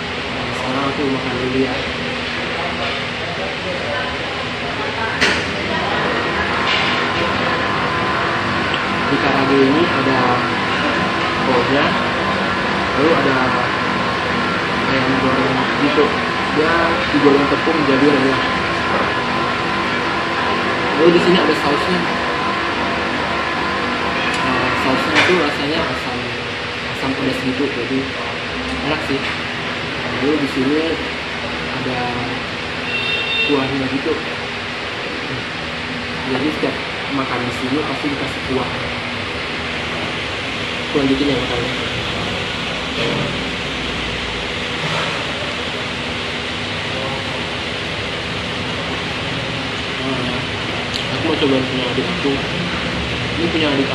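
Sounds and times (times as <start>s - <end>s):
steady mechanical hum and hiss: 0.0s - 53.9s
steady background hiss: 33.5s - 53.9s.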